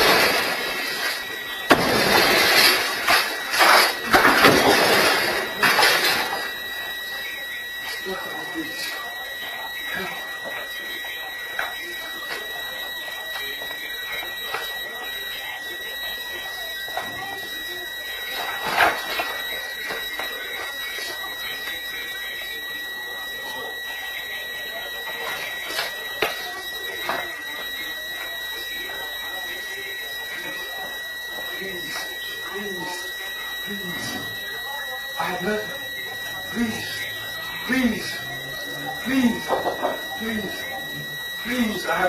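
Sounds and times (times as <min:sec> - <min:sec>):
high-pitched electronic alarm tone: 0:00.0 - 0:42.0.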